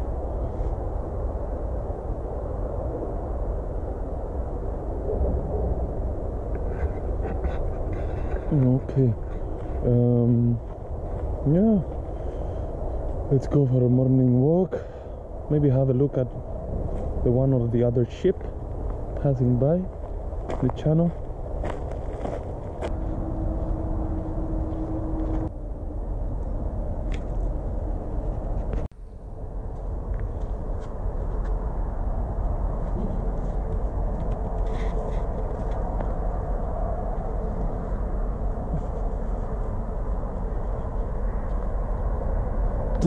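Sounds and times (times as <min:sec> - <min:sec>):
faint droning hum: 0:00.0 - 0:43.0
low outdoor rumble: 0:00.0 - 0:43.0.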